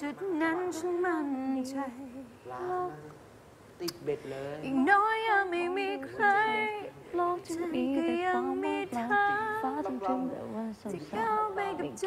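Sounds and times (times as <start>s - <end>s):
woman singing unaccompanied: 0.0s - 3.2s, 4.6s - 12.0s.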